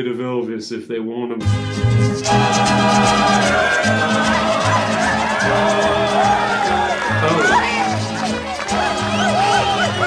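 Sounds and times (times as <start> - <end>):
mariachi band music: 1.4 - 10.0.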